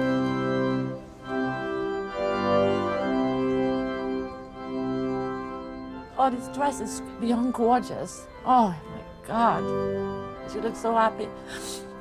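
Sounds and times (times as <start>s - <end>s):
organ playing slow chords: 0.0s - 12.0s.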